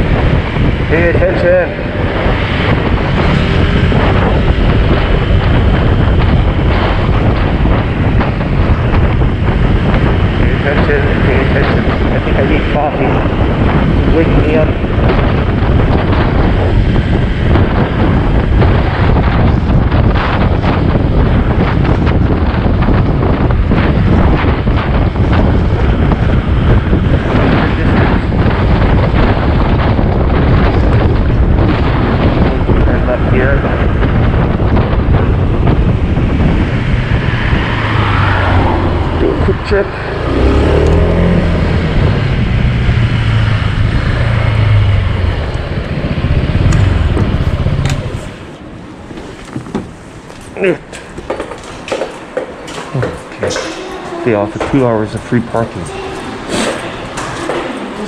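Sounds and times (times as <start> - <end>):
road noise: 0.0 - 58.0
wind buffeting microphone: 0.0 - 58.0
scooter engine: 1.7 - 12.2, 34.8 - 50.0.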